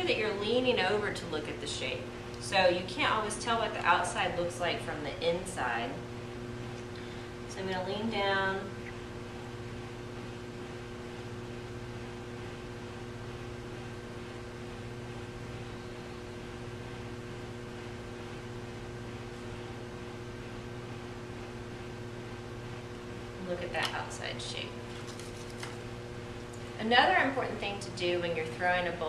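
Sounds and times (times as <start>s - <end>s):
potter's wheel motor humming: 0.0s - 29.0s.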